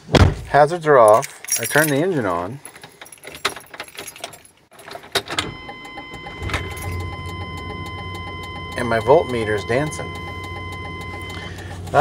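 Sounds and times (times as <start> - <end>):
keys jangling: 1.0 - 5.1, 6.6 - 7.0
car engine starting and idling: 4.7 - 12.0.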